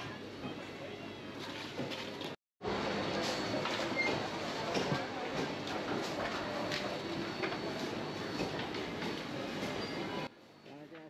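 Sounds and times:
busy market din: 0.0s - 11.0s.

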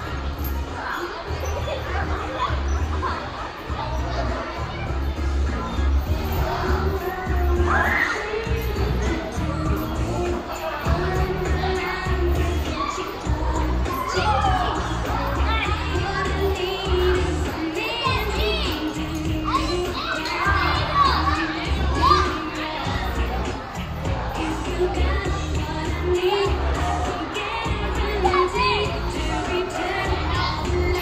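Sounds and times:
children shouting: 0.0s - 31.0s
pop music with heavy bass: 5.0s - 31.0s.

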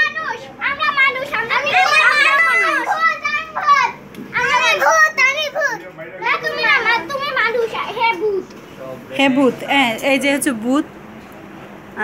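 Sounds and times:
girls talking: 0.0s - 8.7s.

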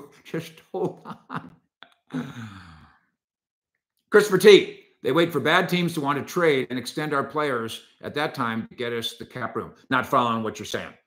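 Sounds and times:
man sighing: 2.1s - 3.1s.

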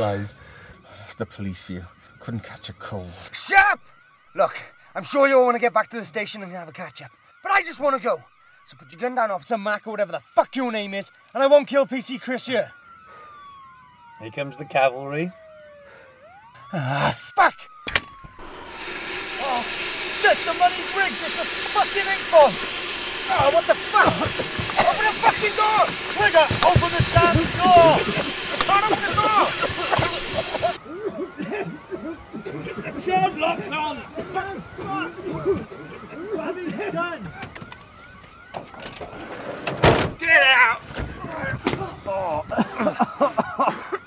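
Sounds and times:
siren: 0.0s - 44.0s
hiss of smoke pouring out: 18.4s - 30.8s
short cries: 24.2s - 25.9s
loud thump: 39.8s - 40.2s.

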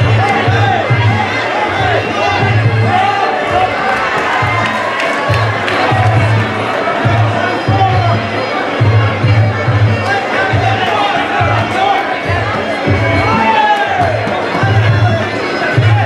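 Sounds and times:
crowd shouting and cheering: 0.0s - 16.0s.

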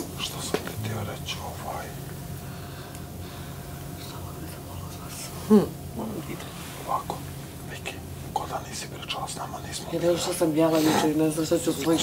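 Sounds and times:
people whispering: 0.0s - 2.0s, 3.9s - 12.0s.

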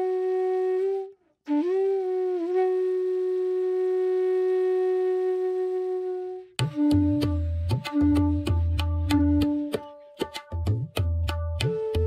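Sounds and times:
long held flute note: 0.0s - 10.1s.

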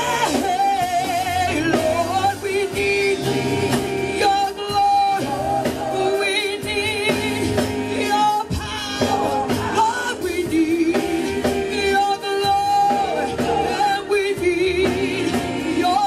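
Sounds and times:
church band with drums: 0.0s - 16.0s
women singing gospel: 0.0s - 16.0s.

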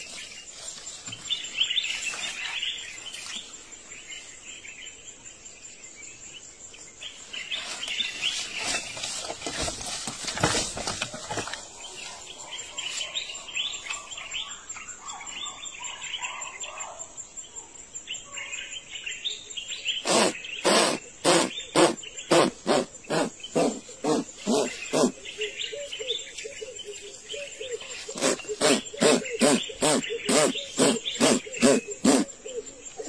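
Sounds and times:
birds chirping faintly: 0.0s - 33.0s
chimpanzee panting and hooting: 20.0s - 26.1s, 27.4s - 33.0s
insect trilling: 20.0s - 33.0s.

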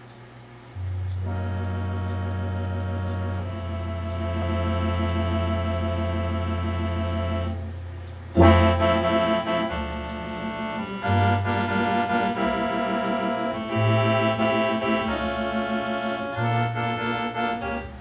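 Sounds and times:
electronic organ chords: 0.0s - 18.0s
organ pedal bass note: 0.0s - 18.0s.

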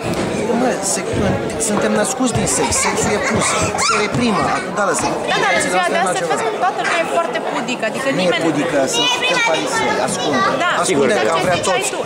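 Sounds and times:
voices chattering: 0.0s - 12.0s
man talking: 0.4s - 6.3s.

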